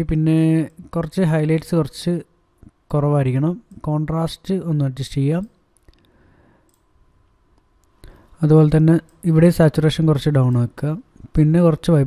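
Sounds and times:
computer mouse clicks: 5.4 - 6.9.

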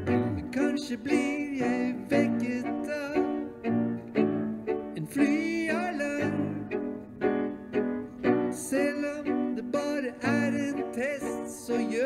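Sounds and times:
bowed strings: 0.0 - 12.0
grand piano: 0.0 - 12.0
person singing: 0.0 - 12.0.

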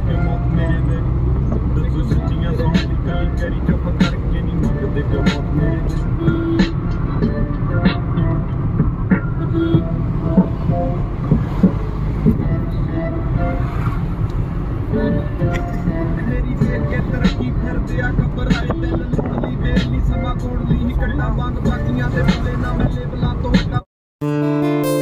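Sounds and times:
car road and engine rumble: 0.0 - 23.9.

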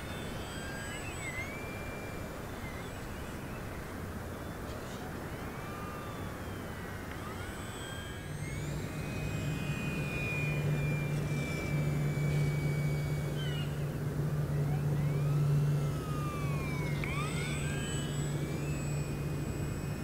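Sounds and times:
model plane motor whine: 0.0 - 20.0
steady low hum: 0.0 - 20.0.

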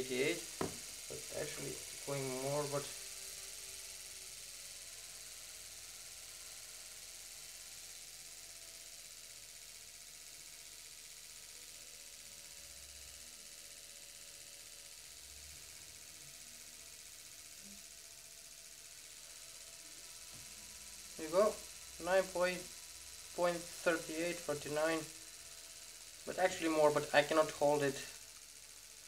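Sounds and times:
motor running hum: 0.0 - 10.0, 11.5 - 29.0.

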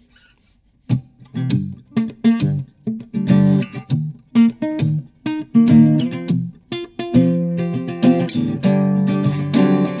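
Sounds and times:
acoustic guitar strumming: 0.9 - 10.0.

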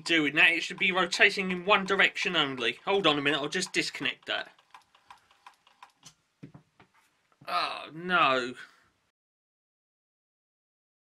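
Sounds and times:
irregular mechanism ticking: 0.0 - 6.2.

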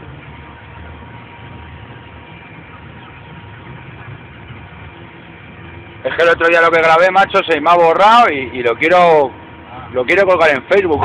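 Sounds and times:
truck engine rumbling: 0.0 - 11.0.

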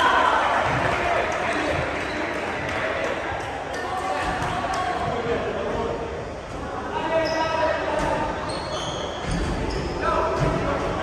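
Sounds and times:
voices echoing in a hall: 0.0 - 11.0.

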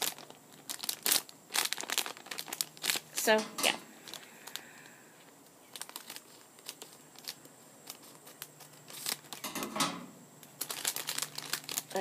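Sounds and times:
plastic packet crinkling: 0.0 - 9.8, 10.4 - 12.0.

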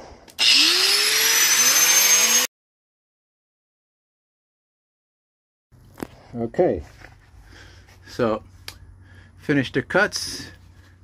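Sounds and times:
angle grinder motor whining: 0.3 - 2.5.

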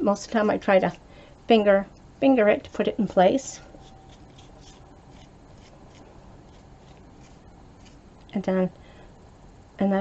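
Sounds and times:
comb scratching through wig fibers: 3.7 - 8.0.

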